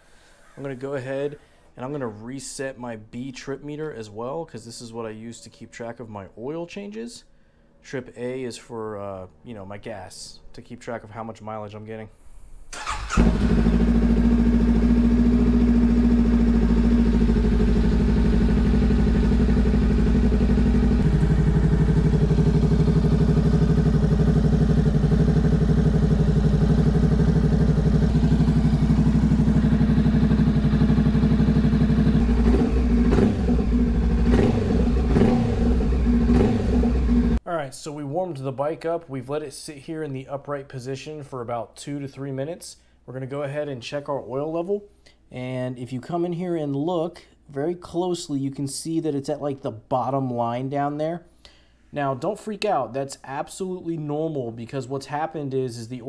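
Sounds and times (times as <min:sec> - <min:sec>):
motorcycle engine starting and idling: 0:12.7 - 0:37.4.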